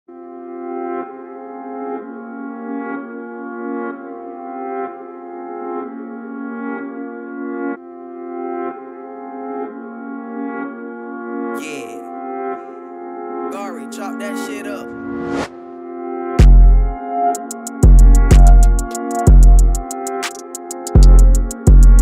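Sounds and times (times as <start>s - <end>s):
brass chords in trap instrumental: 11.6s - 12.8s, 13.5s - 15.3s, 16.4s - 22.0s.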